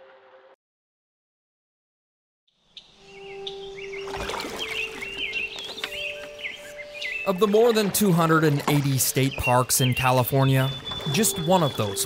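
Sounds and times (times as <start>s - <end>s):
birds chirping: 2.5s - 12.0s.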